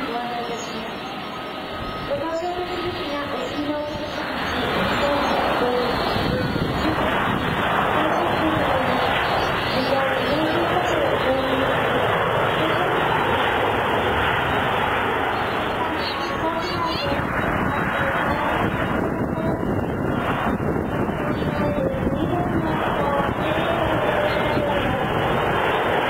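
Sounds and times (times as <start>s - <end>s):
people talking: 0.0s - 1.1s, 2.1s - 7.2s, 7.9s - 11.9s, 12.6s - 13.2s, 15.7s - 19.8s, 21.1s - 25.4s
jet engines running: 0.0s - 26.0s.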